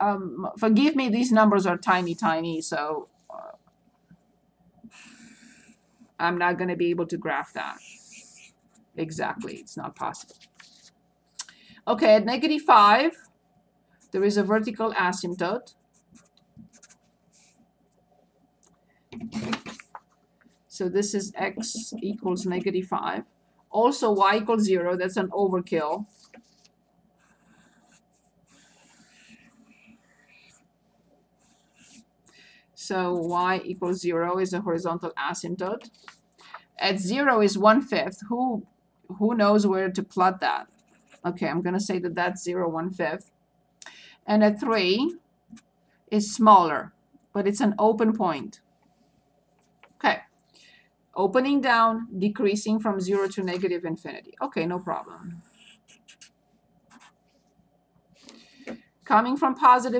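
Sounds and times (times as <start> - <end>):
marker scratching on paper: 4.9 - 6.1, 7.3 - 11.0, 15.2 - 17.6, 21.1 - 23.2, 25.4 - 30.7, 31.4 - 32.1, 32.9 - 34.0, 40.5 - 41.5, 54.6 - 57.4.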